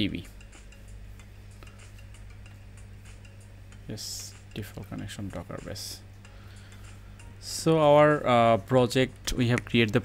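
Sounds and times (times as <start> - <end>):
low electrical hum: 0.0 - 10.0
faint regular ticking: 0.3 - 4.6.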